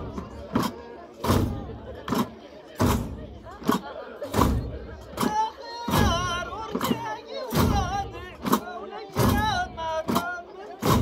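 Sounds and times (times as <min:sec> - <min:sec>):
hand strikes on frame drums: 0:00.6 - 0:11.0
men's group chanting: 0:05.2 - 0:11.0.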